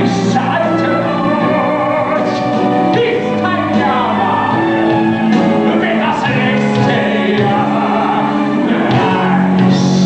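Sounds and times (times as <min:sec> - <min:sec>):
orchestra playing: 0:00.0 - 0:10.0
chorus singing held notes: 0:03.0 - 0:10.0.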